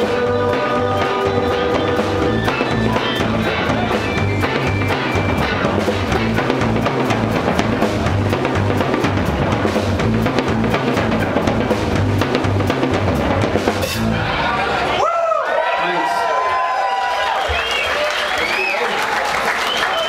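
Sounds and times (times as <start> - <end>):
pulsing bass line: 0.0 - 14.8.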